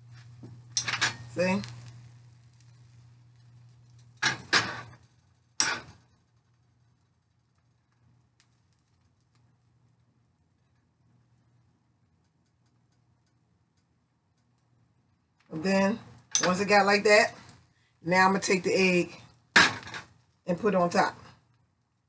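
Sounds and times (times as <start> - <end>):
frying pan clattering on stove: 0.7 - 1.3, 4.2 - 5.0, 5.6 - 6.0.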